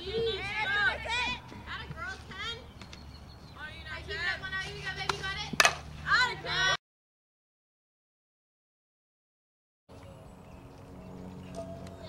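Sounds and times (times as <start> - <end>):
bat cracking ball: 5.6 - 5.9
low outdoor hum: 9.9 - 12.0.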